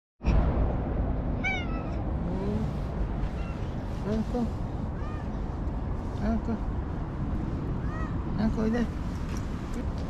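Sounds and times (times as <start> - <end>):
steady low rumble: 0.2 - 10.0
cat meowing: 1.4 - 2.0, 3.3 - 3.8, 5.0 - 5.4, 7.8 - 8.3.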